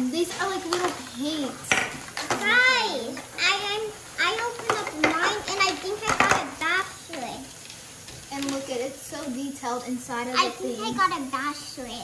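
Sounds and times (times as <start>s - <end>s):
children talking: 0.0s - 7.6s, 8.2s - 12.0s
plastic toy pieces clattering: 4.2s - 8.8s.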